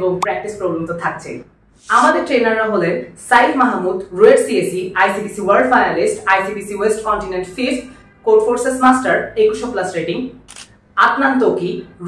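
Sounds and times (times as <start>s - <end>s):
person narrating: 0.0s - 2.8s.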